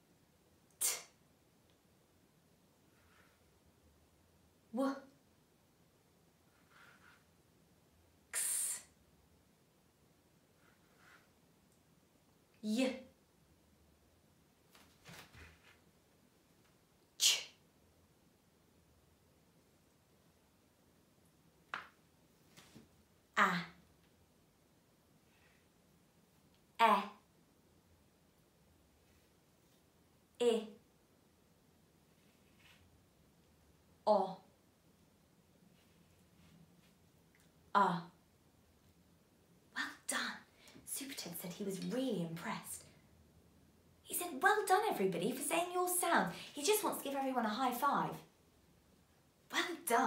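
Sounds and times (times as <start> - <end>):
woman saying ch sound: 0.8 - 1.1, 4.7 - 5.1, 8.4 - 8.9, 12.6 - 13.1, 17.2 - 17.5, 23.4 - 23.8, 26.8 - 27.2, 30.4 - 30.8, 34.1 - 34.4, 37.8 - 38.1, 39.8 - 42.8, 44.1 - 48.2, 49.5 - 50.0
woman speaking: 4.7 - 5.1, 12.6 - 13.1, 23.4 - 23.8, 26.8 - 27.2, 30.4 - 30.8, 34.1 - 34.4, 37.7 - 38.2, 39.8 - 43.0, 44.1 - 48.3, 49.5 - 50.0.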